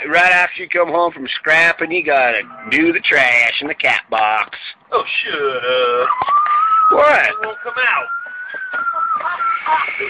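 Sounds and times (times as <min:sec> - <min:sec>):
high steady whistling tone: 0:06.0 - 0:10.0.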